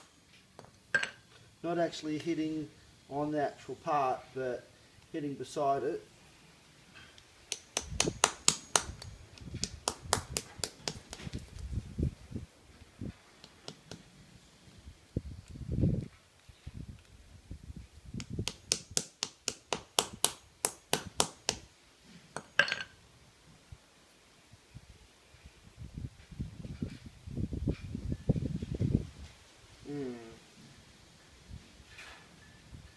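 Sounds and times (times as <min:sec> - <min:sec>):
hammer tapping plaster: 0:07.5 - 0:11.3, 0:18.4 - 0:21.6.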